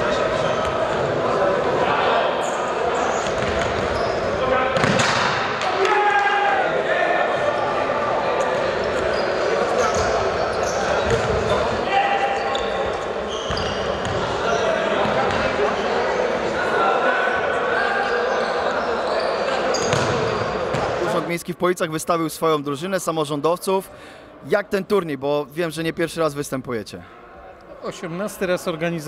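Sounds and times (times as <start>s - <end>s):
shoes squeaking: 2.4s - 5.0s, 9.0s - 14.6s, 18.1s - 20.4s.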